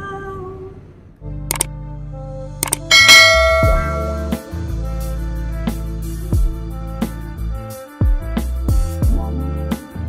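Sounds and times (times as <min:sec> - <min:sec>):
bell chime notification: 0:02.9 - 0:04.4
music with deep bass beat: 0:02.9 - 0:10.0.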